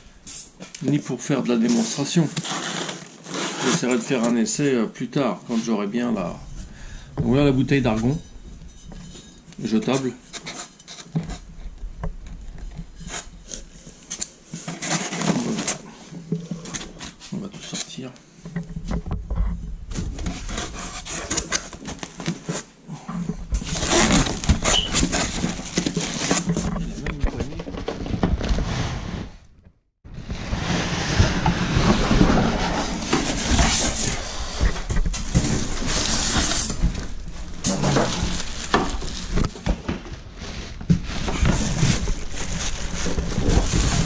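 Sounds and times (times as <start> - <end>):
plastic wrapping crinkling: 30.1 - 44.0
foam rubbing against cardboard: 30.2 - 36.9.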